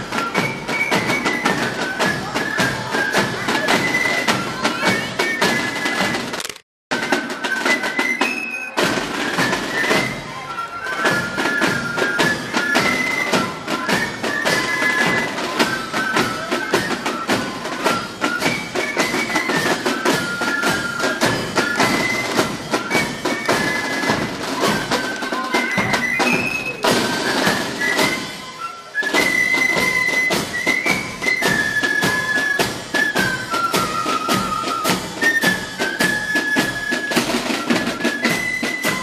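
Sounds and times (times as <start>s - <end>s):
flutes playing a march melody: 0.0s - 39.0s
rapid side drum beats: 8.8s - 10.2s, 11.1s - 39.0s.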